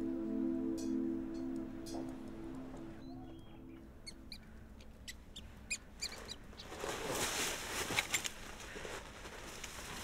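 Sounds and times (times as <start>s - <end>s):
small birds chirping: 3.0s - 6.8s
rustling noise: 6.1s - 10.0s.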